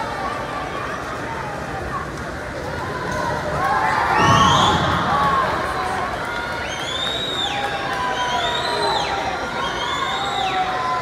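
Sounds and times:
crowd cheering: 0.0s - 11.0s
high-pitched cheer: 3.6s - 11.0s.

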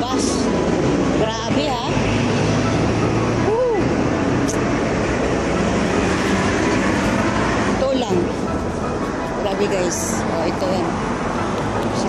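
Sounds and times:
buses and trucks passing: 0.0s - 12.0s
road traffic: 0.0s - 12.0s.

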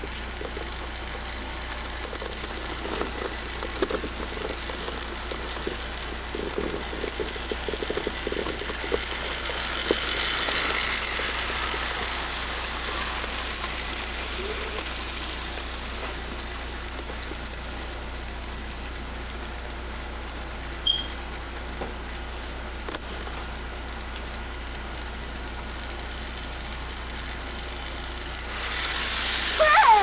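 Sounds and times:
model train wheels rattling: 0.0s - 17.6s
steady hiss and hum: 0.0s - 20.8s.

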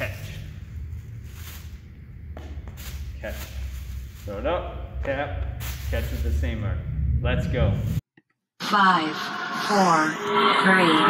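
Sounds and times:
plastic bag rustling: 2.8s - 4.6s.

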